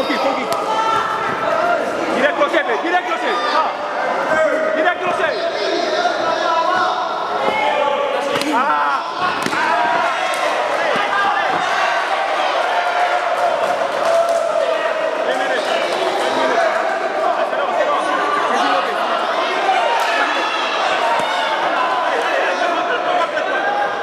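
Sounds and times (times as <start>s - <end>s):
spectators shouting: 3.1s - 24.0s.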